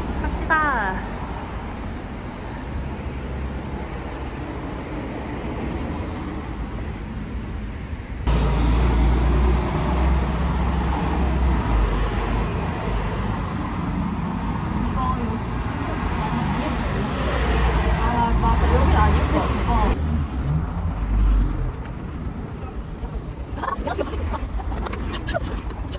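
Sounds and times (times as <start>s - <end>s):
passing cars traffic rumble: 0.0s - 25.9s.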